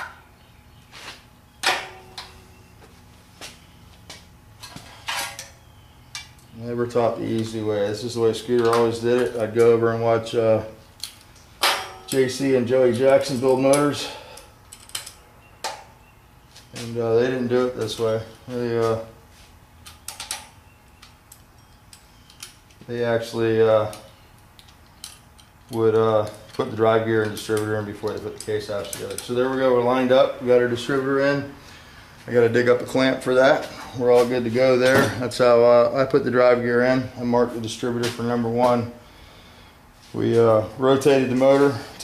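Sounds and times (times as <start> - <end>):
metal tools clicking and clinking: 13.1 - 15.2, 23.8 - 29.4.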